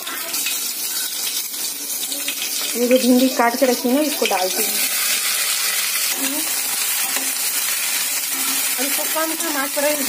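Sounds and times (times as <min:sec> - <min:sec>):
chillies sizzling in hot oil: 0:00.0 - 0:10.0.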